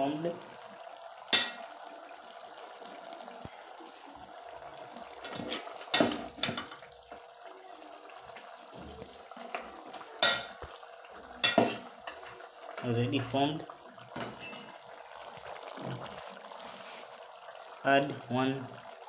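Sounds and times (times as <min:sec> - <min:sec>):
simmering liquid hiss: 0:00.0 - 0:19.0
metal spoon stirring soup: 0:05.1 - 0:06.9
spoon clinking against pot: 0:10.2 - 0:10.6, 0:11.4 - 0:12.3.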